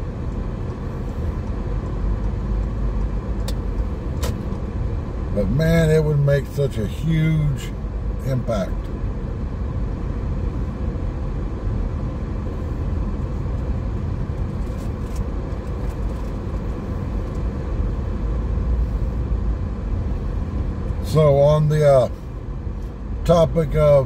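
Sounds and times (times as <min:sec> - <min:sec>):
car road and engine noise: 0:00.0 - 0:24.0.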